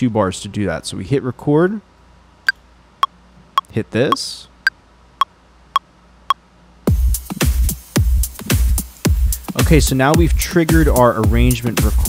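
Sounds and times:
electronic groove with deep kick drum: 6.9s - 12.0s.

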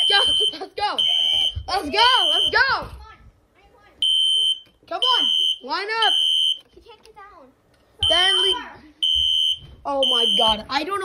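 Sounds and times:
smoke alarm beeping: 0.0s - 2.7s, 4.0s - 6.7s, 8.0s - 10.8s.

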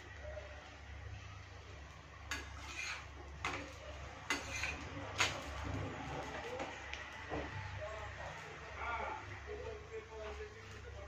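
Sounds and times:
metal utensils clinking on pans: 2.2s - 6.4s.

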